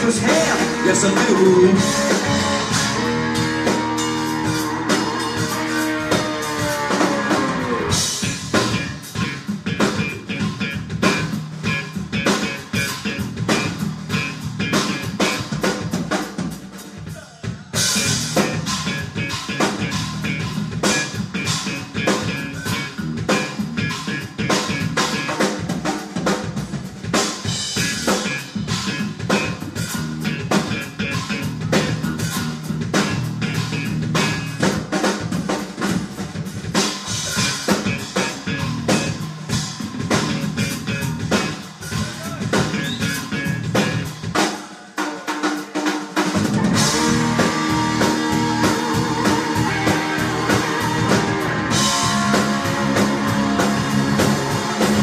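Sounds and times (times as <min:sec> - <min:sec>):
drum kit: 0:00.0 - 0:55.0
rock band playing funk-blues: 0:00.0 - 0:55.0.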